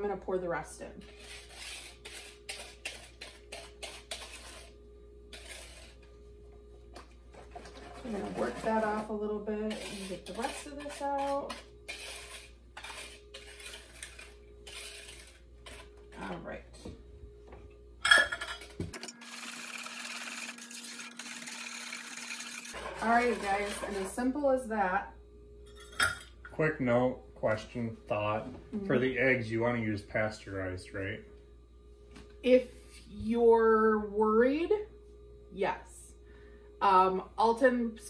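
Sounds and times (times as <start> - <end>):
utensil scraping a bowl: 1.0 - 6.1, 7.3 - 16.3, 20.5 - 24.2.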